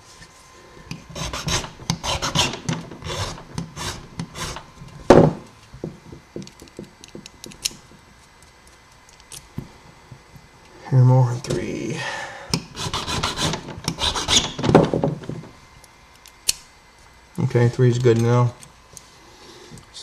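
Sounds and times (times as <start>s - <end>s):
file rasping on metal key: 1.1s - 4.6s, 12.8s - 14.6s.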